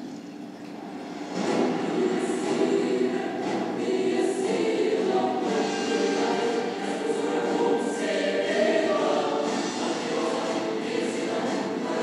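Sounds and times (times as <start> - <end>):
dramatic trailer music with choir: 1.0 - 12.0.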